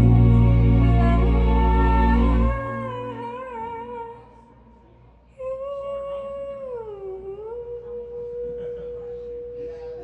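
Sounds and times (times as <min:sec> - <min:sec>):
woman singing a long note: 0:00.0 - 0:04.5, 0:05.4 - 0:10.0.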